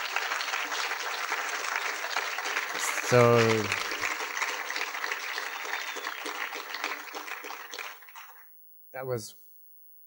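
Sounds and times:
audience applauding: 0:00.0 - 0:08.5.

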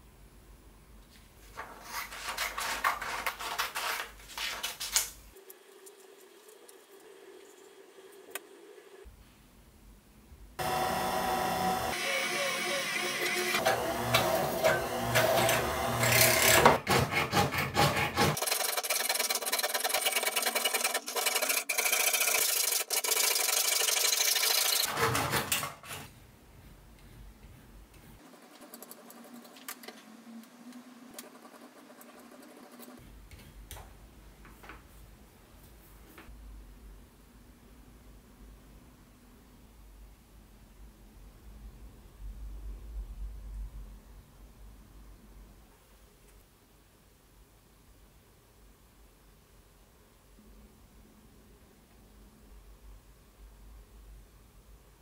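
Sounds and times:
saw cutting sheet metal: 0:10.6 - 0:25.3.

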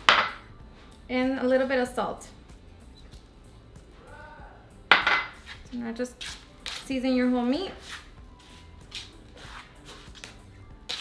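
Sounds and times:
kitchenware clinking: 0:04.9 - 0:05.4.

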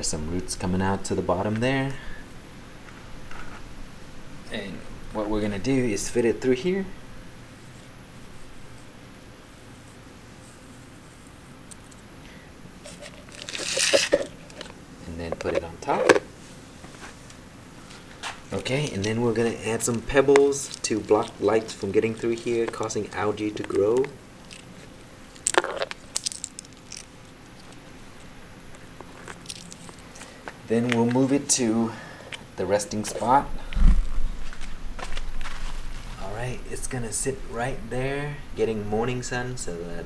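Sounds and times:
faint background hiss: 0:00.0 - 0:40.0
clay pebbles clicking into plastic cup: 0:12.9 - 0:14.7, 0:18.8 - 0:22.9, 0:25.4 - 0:27.8
plastic rubbing and scraping: 0:12.9 - 0:14.7.

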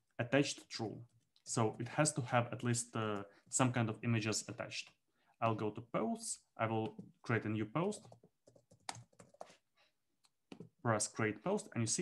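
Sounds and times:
computer keyboard typing: 0:07.8 - 0:09.6.

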